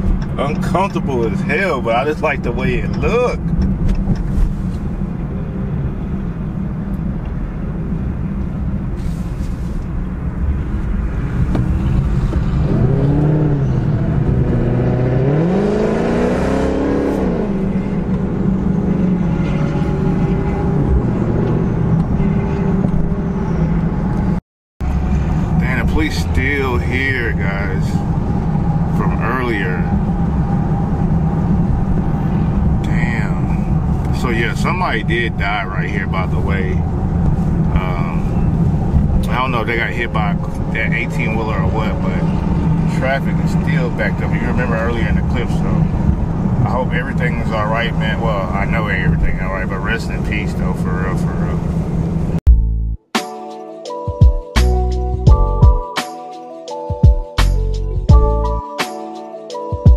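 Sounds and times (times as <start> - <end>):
car engine and road drone: 0.0 - 52.8, 57.4 - 58.6.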